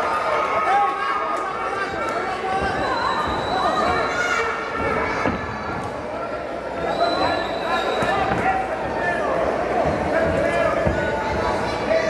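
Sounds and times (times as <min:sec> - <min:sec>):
voices shouting in a hall: 0:00.0 - 0:12.0.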